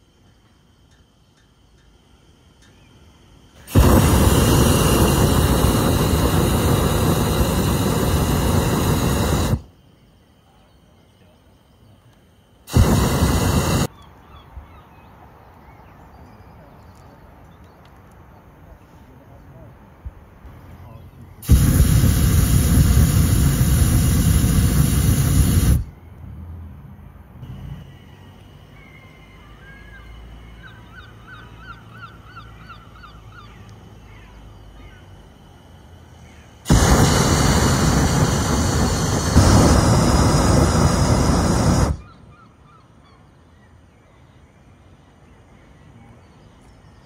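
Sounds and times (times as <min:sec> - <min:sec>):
propane burner firing: 0:03.6 - 0:09.7, 0:12.7 - 0:13.9, 0:21.4 - 0:25.9, 0:36.6 - 0:42.2
faint bird calls: 0:12.8 - 0:19.8, 0:27.5 - 0:35.2, 0:40.1 - 0:47.0.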